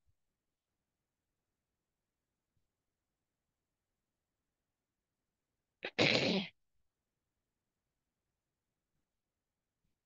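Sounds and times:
person sneezing: 5.8 - 6.5.

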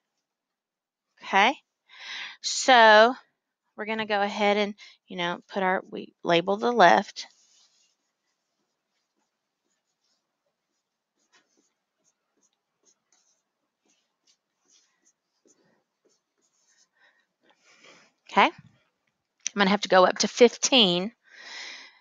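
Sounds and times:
stylus tapping and scratching: 7.2 - 17.9.

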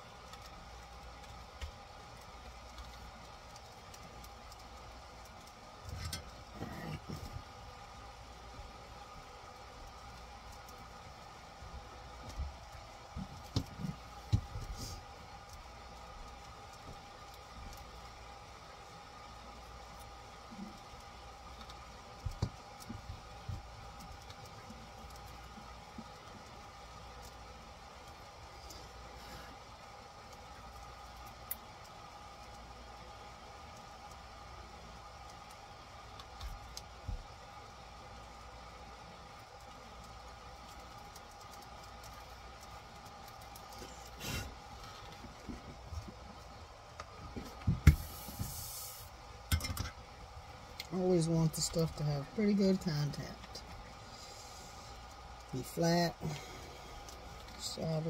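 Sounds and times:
steady low hum: 0.0 - 58.0
small knocks and clicks of tools: 49.5 - 50.0.

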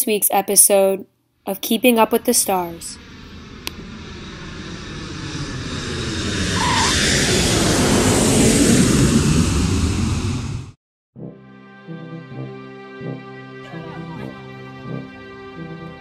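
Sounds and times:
jet airliner engine roar: 1.9 - 10.8.

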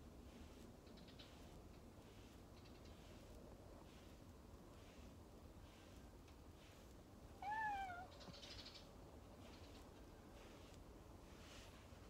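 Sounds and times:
cat meowing: 7.4 - 8.1.

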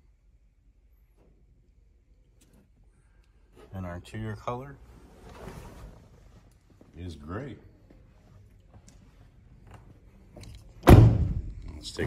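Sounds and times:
car door slamming: 10.8 - 11.5.

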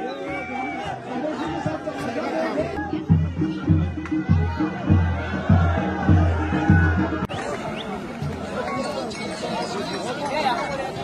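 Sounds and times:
outdoor crowd chatter: 0.0 - 11.0
music with heavy low beat: 2.8 - 7.3.

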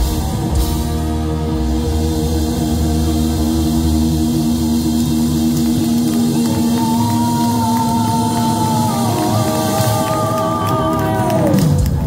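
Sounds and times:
hard rock band playing: 0.0 - 12.0.

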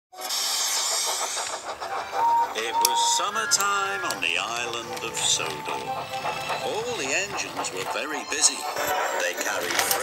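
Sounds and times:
loud hiss of escaping steam: 0.2 - 4.7
steam locomotive chuffing: 0.2 - 10.0.

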